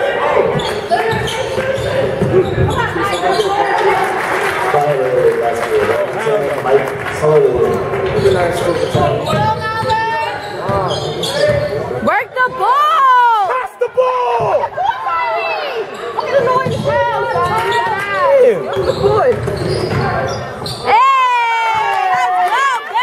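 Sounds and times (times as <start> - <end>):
echoing crowd chatter: 0.0 - 23.0
sneaker squeaks on floor: 0.4 - 3.8, 8.1 - 12.0, 15.9 - 20.9.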